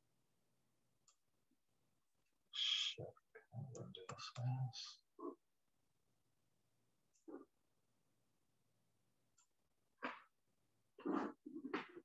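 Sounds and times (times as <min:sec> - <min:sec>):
muffled vocal sounds: 0:02.6 - 0:05.4.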